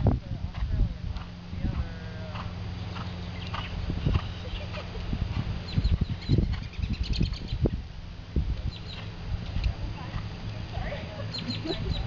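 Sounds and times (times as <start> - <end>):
small birds chirping: 1.6 - 7.8, 8.6 - 12.0.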